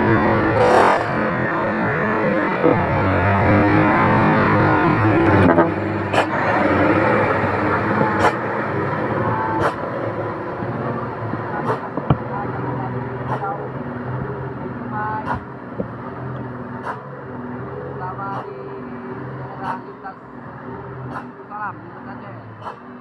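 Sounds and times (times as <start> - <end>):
truck diesel engine passing: 0.0 - 23.0.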